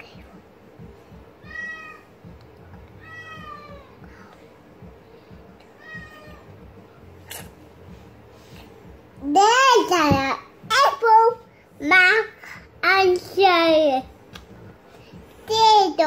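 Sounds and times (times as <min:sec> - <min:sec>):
cat meowing: 0:01.4 - 0:02.0, 0:03.0 - 0:04.0, 0:05.8 - 0:06.5.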